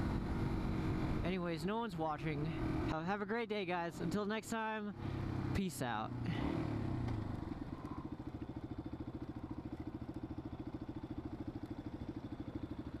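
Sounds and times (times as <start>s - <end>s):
motorcycle engine idling: 4.8s - 13.0s.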